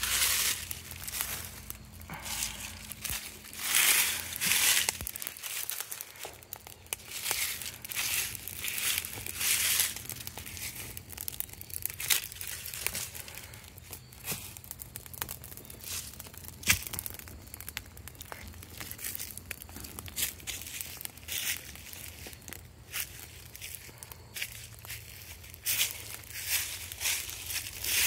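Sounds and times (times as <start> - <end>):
dry leaves crackling in fire: 0.0 - 28.0.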